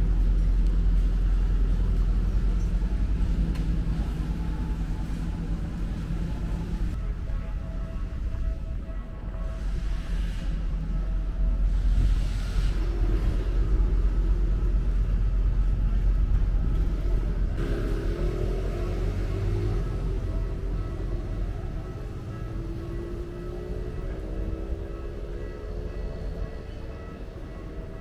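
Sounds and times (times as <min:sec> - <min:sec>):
street traffic rumble: 0:00.0 - 0:28.0
faint wavering tones: 0:17.6 - 0:28.0.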